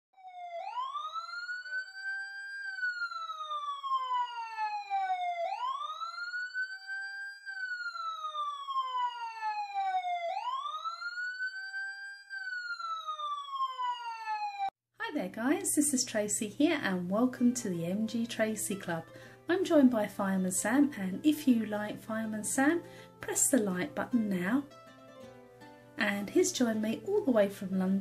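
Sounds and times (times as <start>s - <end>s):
siren wailing: 0.2s - 14.8s.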